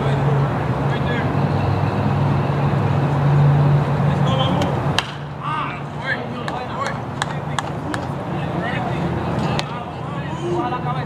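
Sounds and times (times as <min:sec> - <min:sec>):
scattered voices: 0:04.0 - 0:11.0
baseball hitting catcher's mitt: 0:05.0 - 0:05.3.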